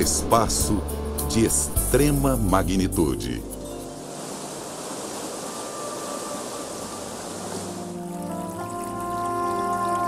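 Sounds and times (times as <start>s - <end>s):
soft background music: 0.0s - 10.0s
water pouring over a ledge: 7.0s - 10.0s.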